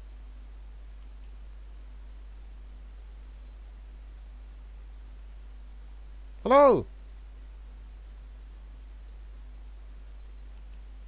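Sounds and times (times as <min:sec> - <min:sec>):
faint hiss: 0:00.0 - 0:11.0
low electrical hum: 0:00.0 - 0:11.0.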